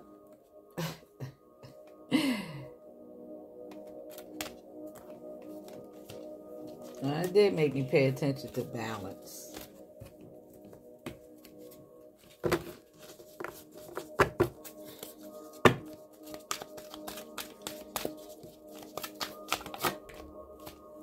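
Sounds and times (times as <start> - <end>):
soft background music: 0.0 - 21.0
cards being shuffled: 3.7 - 7.8, 8.4 - 10.2, 11.1 - 20.9.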